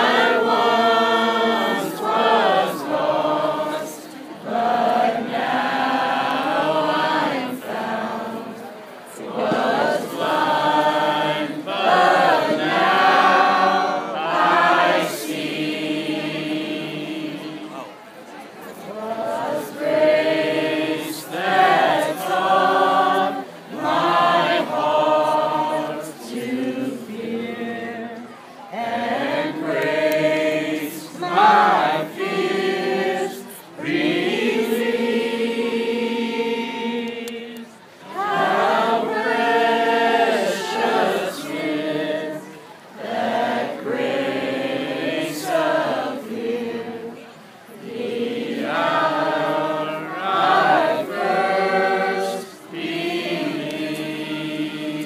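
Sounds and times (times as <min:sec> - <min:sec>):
crowd singing together: 0:00.0 - 0:55.0.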